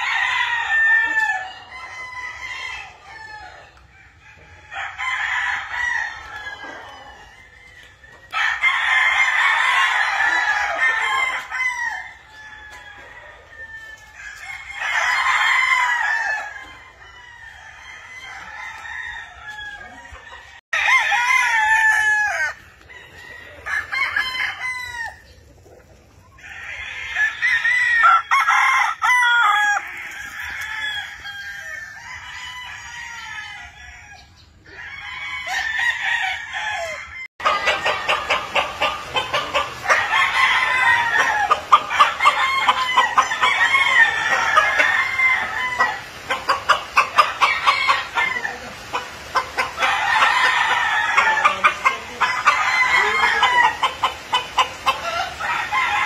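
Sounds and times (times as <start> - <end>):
chickens clucking: 0.0 - 27.2, 36.6 - 56.0
roosters crowing: 0.0 - 56.0.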